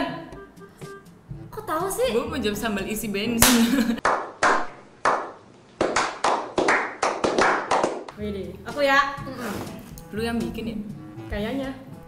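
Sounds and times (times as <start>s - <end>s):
group slow clapping: 3.4s - 8.2s.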